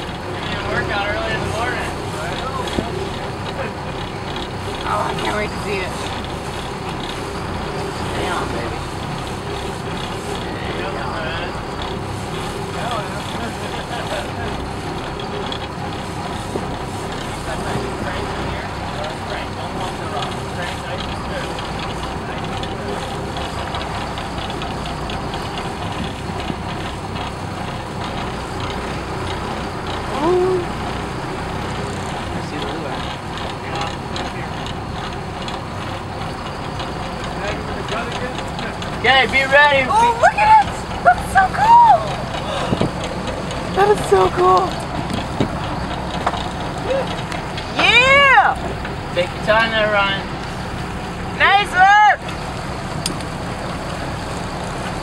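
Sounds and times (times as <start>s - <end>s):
boat engine droning: 0.0s - 55.0s.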